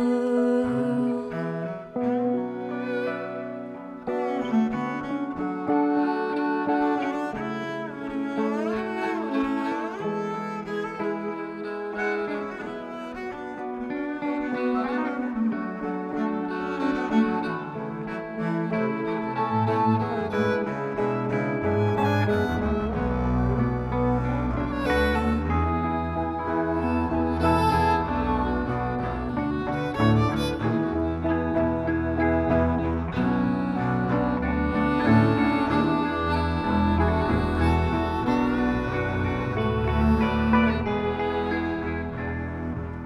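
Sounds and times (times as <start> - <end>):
bluegrass strings playing: 0.0 - 43.0
fiddle bowing long notes: 0.0 - 43.0
guitar: 0.0 - 43.0.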